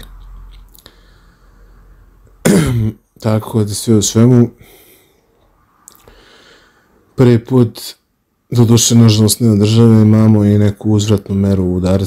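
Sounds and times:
man clearing his throat: 2.4s - 3.1s.

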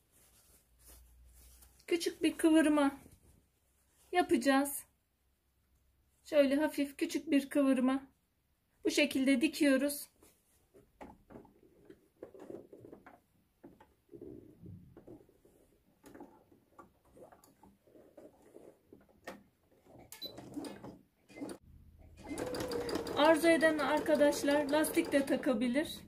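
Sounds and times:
fabric rustling: 0.0s - 4.6s, 10.1s - 20.0s.

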